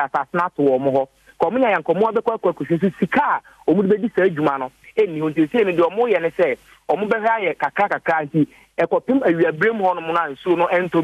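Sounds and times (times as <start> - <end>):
man speaking over telephone: 0.0 - 11.0.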